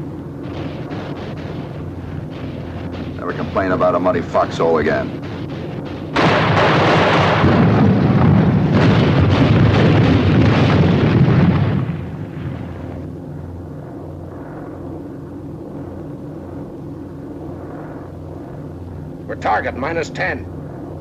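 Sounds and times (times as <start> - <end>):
flak explosions barrage: 0.0 - 14.6
aircraft engines droning: 0.0 - 21.0.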